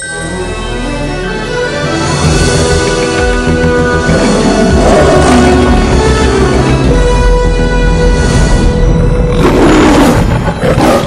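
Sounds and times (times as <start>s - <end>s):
logo music: 0.0s - 10.8s
lion roaring: 4.1s - 6.7s, 9.3s - 11.0s.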